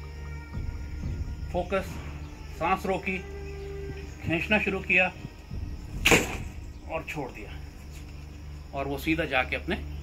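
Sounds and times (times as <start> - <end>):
bow string snap: 5.9 - 6.8.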